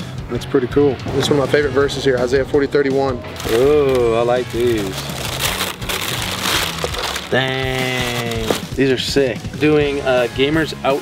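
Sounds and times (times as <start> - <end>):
paper crinkling and rustling: 3.4 - 8.8.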